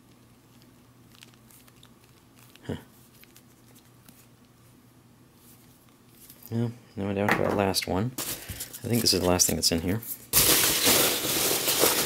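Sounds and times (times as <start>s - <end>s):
metal can crackling when squeezed: 10.4s - 12.0s.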